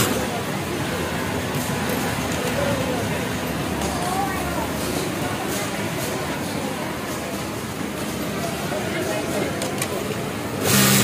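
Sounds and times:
sewing machine stitching: 10.6s - 11.0s.

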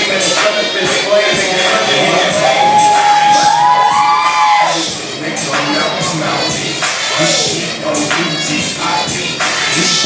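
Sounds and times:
dance music through a speaker: 0.0s - 10.0s.

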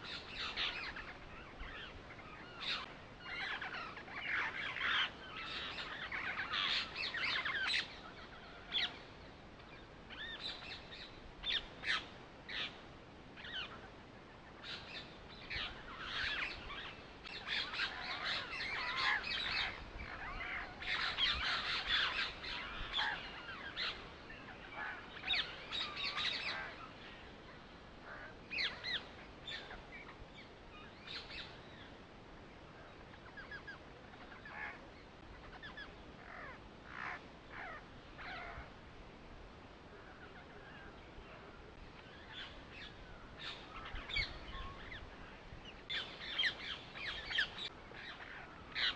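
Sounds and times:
birds chirping: 0.0s - 12.8s, 13.4s - 38.8s, 39.5s - 48.9s.

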